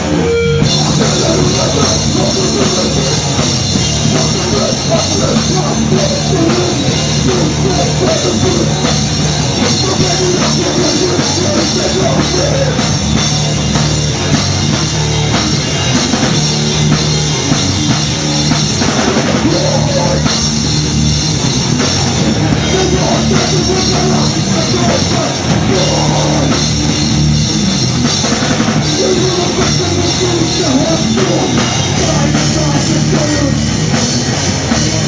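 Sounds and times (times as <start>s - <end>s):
punk band playing live: 0.0s - 35.0s.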